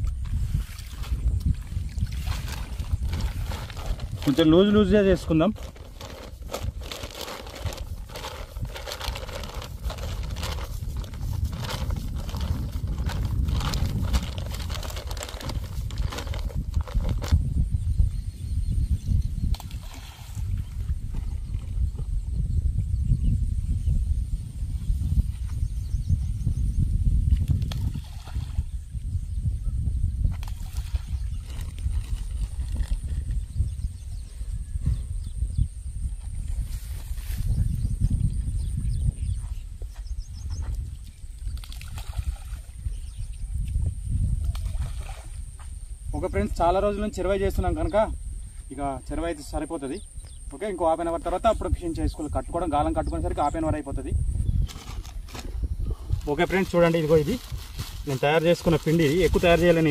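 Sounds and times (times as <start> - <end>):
wind buffeting microphone: 0.0 - 59.9
plastic sack rustling: 2.4 - 17.4, 56.4 - 59.9.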